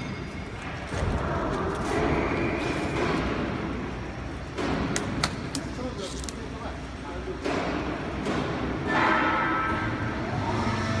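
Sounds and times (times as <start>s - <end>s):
machinery humming whine: 0.0s - 11.0s.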